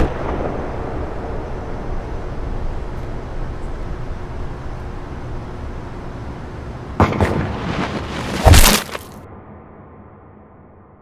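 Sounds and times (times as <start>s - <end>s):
loud heavy boom: 0.0s - 1.8s
low steady rumble: 0.0s - 8.4s
sharp crack: 7.0s - 9.2s.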